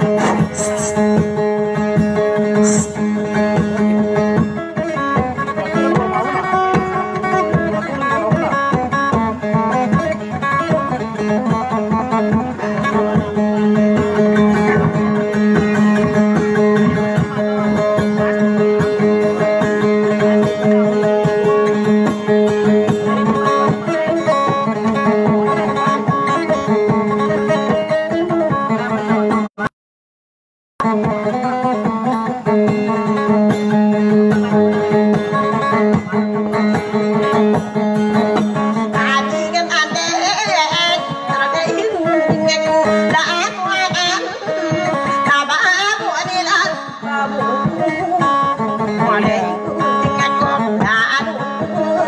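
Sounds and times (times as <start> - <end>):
plucked boat lute: 0.0 - 29.7, 30.8 - 52.0.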